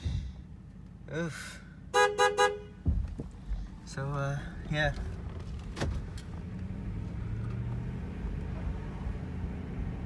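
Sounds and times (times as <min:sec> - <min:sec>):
car driving rumble: 0:00.0 - 0:10.0
car horn toots: 0:01.9 - 0:02.8
dull knock: 0:02.8 - 0:03.4.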